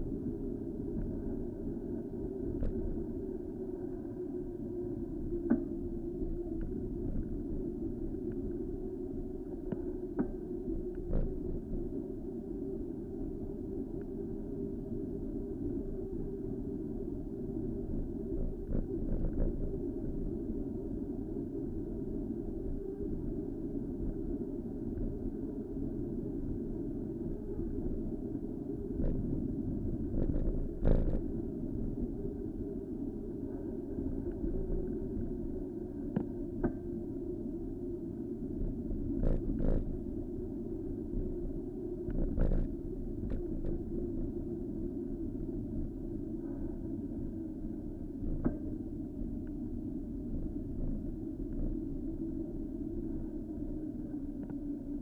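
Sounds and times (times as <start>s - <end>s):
wind rumble: 0.0s - 55.0s.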